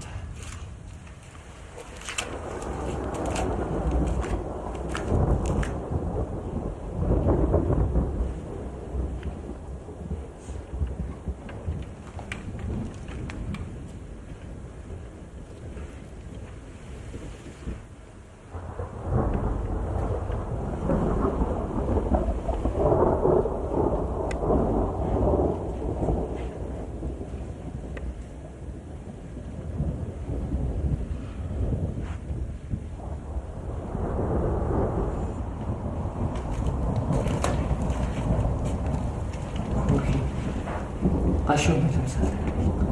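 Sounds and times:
steady rain: 0:00.0 - 0:42.9
thunder rumbling: 0:00.0 - 0:42.9.

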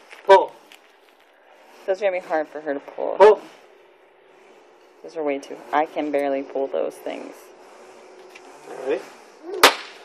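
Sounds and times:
party popper crack: 0:09.6 - 0:10.0.

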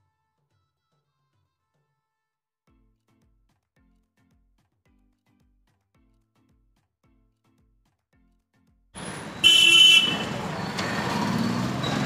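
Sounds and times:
vehicle horn honking: 0:09.0 - 0:11.0
street traffic noise: 0:09.0 - 0:12.0.

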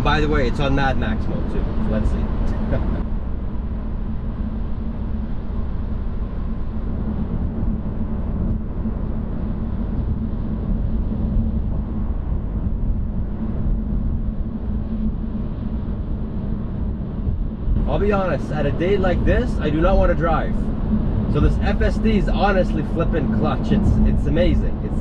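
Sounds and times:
road and tyre noise: 0:00.0 - 0:25.0.

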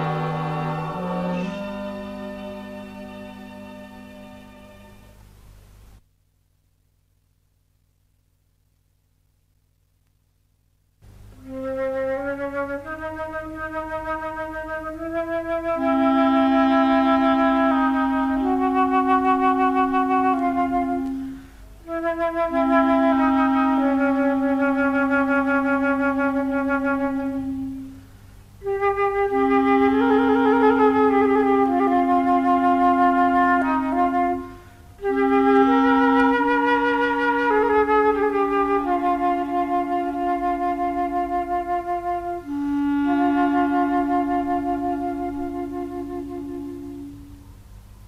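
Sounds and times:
wind ensemble playing slow melody: 0:00.0 - 0:06.0, 0:11.1 - 0:48.0.

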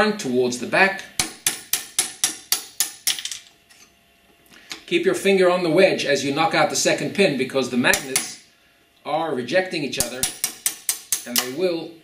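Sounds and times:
hammer tapping metal punch: 0:01.2 - 0:03.4, 0:07.9 - 0:08.4, 0:10.0 - 0:11.6.

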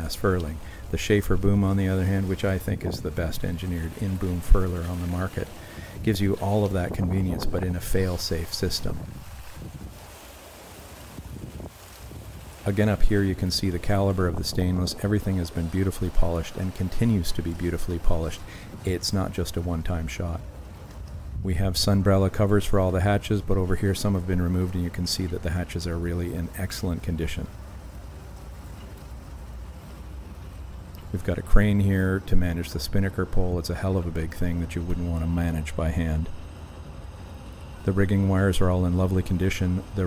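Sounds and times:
wind on microphone rumble: 0:00.0 - 0:25.1
faint hiss: 0:00.0 - 0:40.0.

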